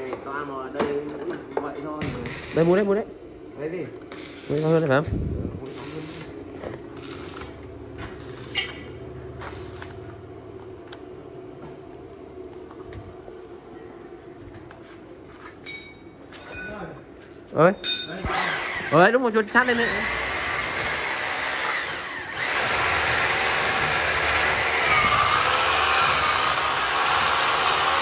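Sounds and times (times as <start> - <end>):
steady mechanical hum: 0.0 - 28.0
metallic clinks of tools: 17.8 - 18.2.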